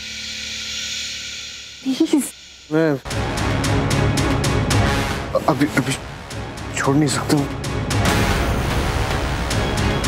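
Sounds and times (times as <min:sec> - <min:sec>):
steady hiss: 0:00.0 - 0:03.1.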